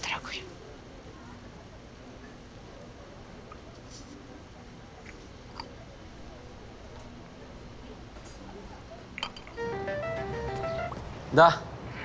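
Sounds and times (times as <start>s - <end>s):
faint low background noise: 0.0s - 12.0s
mobile phone melodic ringtone: 9.6s - 11.0s.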